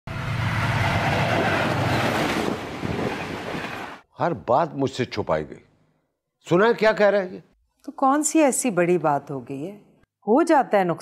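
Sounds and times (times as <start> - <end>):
train wheels on track: 0.1 - 4.0.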